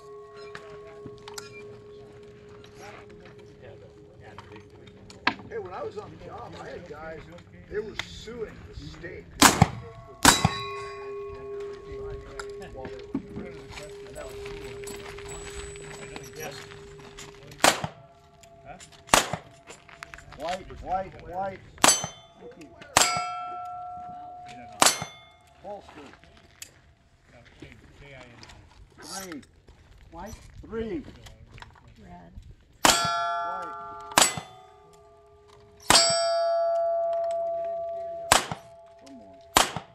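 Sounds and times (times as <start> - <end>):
steel plate target ringing: 9.4 - 20.1, 21.8 - 26.0, 32.8 - 39.9.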